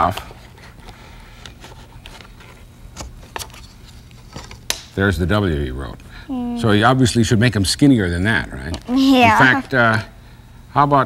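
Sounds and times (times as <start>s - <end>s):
low steady hum: 5.3s - 10.6s.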